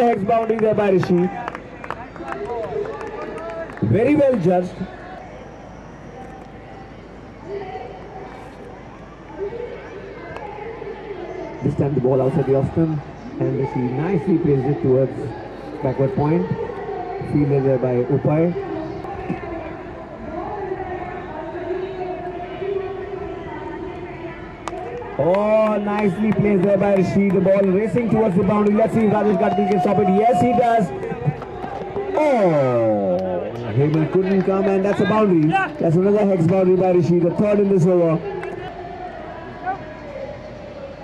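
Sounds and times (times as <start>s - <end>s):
indistinct crowd voices: 0.0s - 41.0s.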